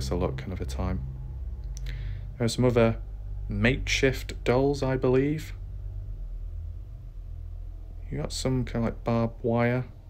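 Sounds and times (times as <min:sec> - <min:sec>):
faint hiss: 0:00.0 - 0:10.0
low steady hum: 0:00.0 - 0:10.0.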